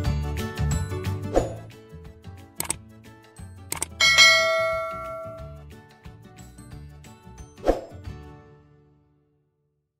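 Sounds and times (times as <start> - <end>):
background music: 0.0 - 9.3
quick clicks: 2.6 - 2.8, 3.7 - 4.0
bell ding: 4.0 - 5.6.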